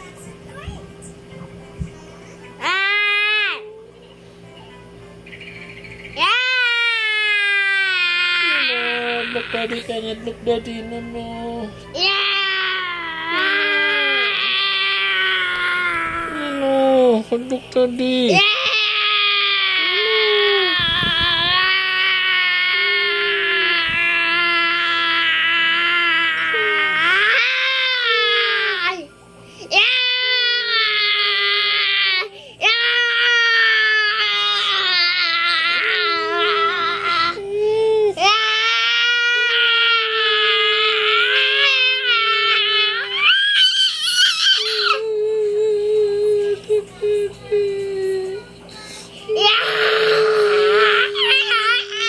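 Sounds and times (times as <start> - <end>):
toddler squealing wail: 38.3 - 45.0
boy wailing: 49.4 - 52.0.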